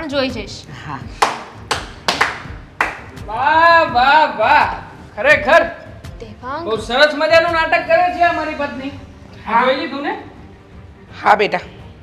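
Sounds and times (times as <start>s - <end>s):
hand claps: 1.2s - 3.3s.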